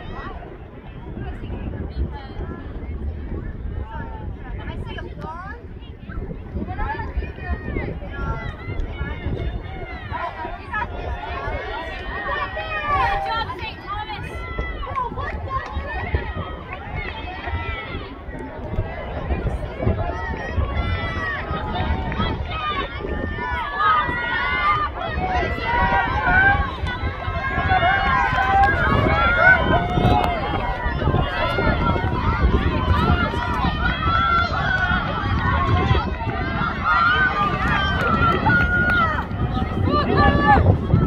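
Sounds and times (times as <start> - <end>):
people talking and calling out: 0.0 - 41.0.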